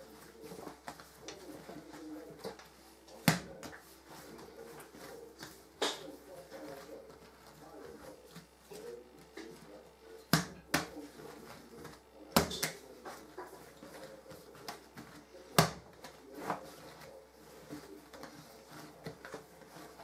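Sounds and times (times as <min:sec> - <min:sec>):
dough slapping on worktop: 0:00.0 - 0:20.0
dough squishing under kneading: 0:00.0 - 0:20.0.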